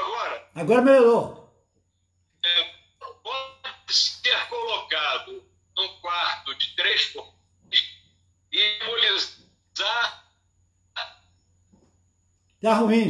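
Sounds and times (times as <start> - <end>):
steady low hum: 0.0 - 13.0
man talking through phone speaker: 2.4 - 10.2.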